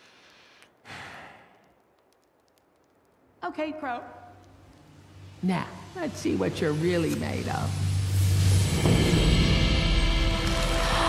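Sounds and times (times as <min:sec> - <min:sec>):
breathy sigh: 0:00.0 - 0:01.7.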